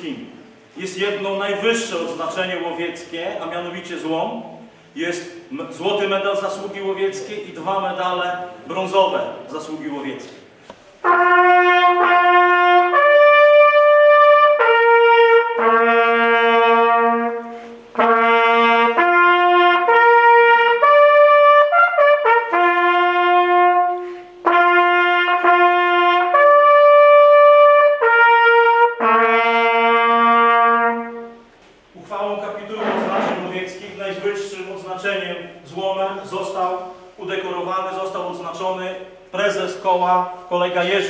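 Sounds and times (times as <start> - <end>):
brass hunting horns playing: 11.0 - 31.5.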